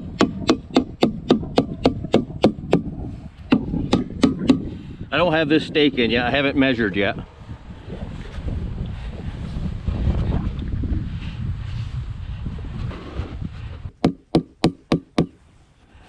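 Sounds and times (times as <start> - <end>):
sharp knocks: 0.2 - 2.9, 3.5 - 4.7, 14.0 - 15.4.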